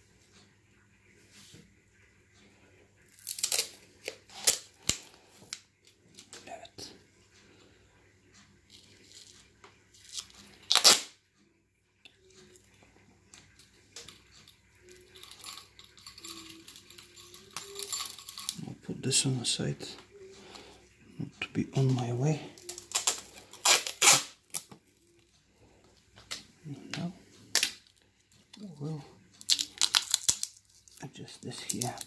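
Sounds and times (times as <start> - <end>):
tape ripping off roll: 10.7 - 11.2, 22.8 - 24.7.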